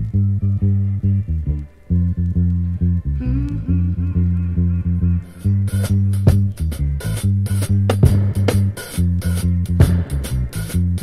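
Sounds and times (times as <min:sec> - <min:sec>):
deep bass line: 0:00.0 - 0:11.0.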